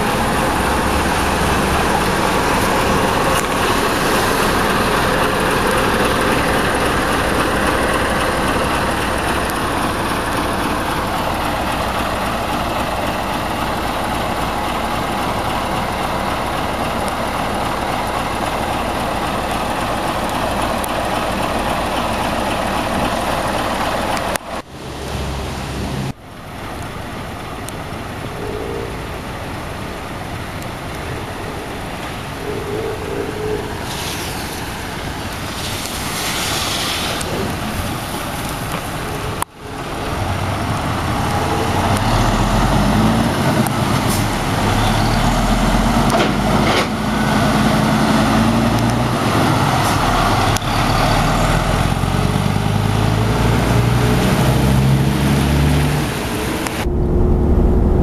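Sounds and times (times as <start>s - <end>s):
loud rushing noise: 0.0s - 14.9s, 33.2s - 47.0s, 53.1s - 58.0s
diesel truck engine idling: 0.0s - 58.0s.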